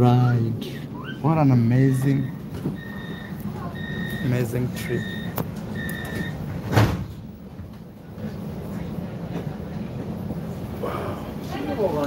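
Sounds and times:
tram running rumble: 0:00.0 - 0:12.0
high door-warning beep: 0:02.0 - 0:06.4
tram doors thumping shut: 0:05.3 - 0:07.7.

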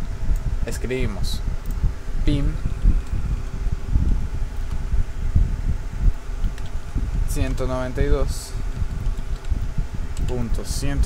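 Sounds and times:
low background rumble: 0:00.0 - 0:11.0
faint keyboard clicks: 0:08.8 - 0:09.6.

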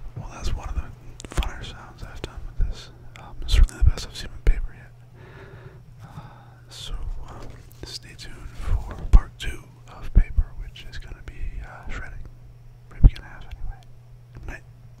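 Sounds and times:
man whispering: 0:00.2 - 0:05.0, 0:06.1 - 0:12.3, 0:12.9 - 0:14.7.

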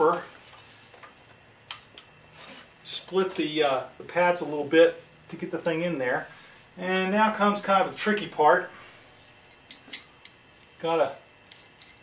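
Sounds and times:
brake disc scraping against pads: 0:02.3 - 0:03.0.

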